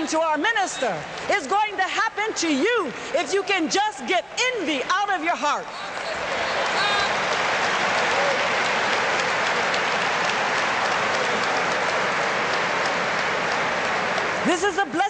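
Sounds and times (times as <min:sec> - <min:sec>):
large audience applauding: 0:05.7 - 0:15.0.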